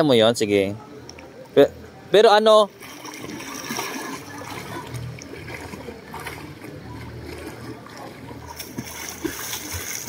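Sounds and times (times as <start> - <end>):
pool water sloshing and splashing: 2.6 - 10.0.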